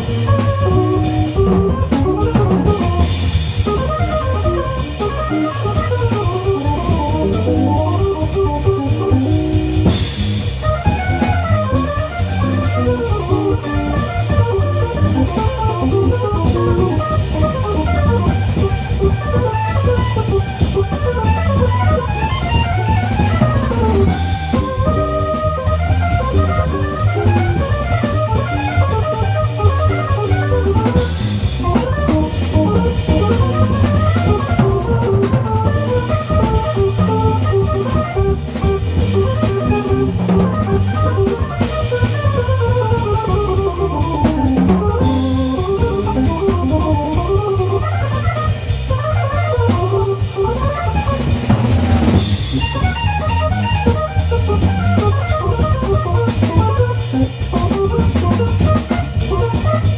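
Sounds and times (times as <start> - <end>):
bass line: 0.0 - 59.9
drum kit: 0.0 - 59.9
guitar: 0.0 - 59.9
jazz organ runs: 0.0 - 59.9.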